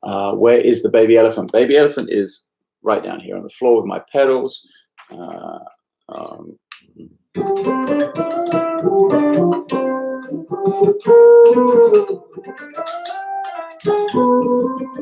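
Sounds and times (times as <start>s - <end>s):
electric bass playing: 7.4s - 15.0s.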